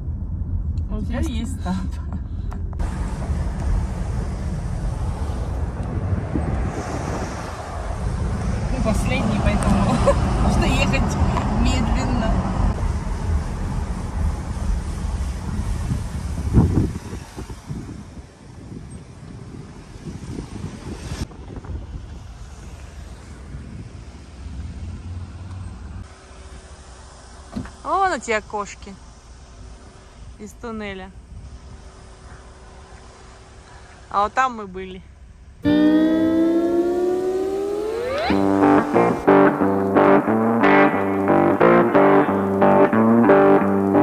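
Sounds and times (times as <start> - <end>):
car engine and road rumble: 0.0 - 44.0.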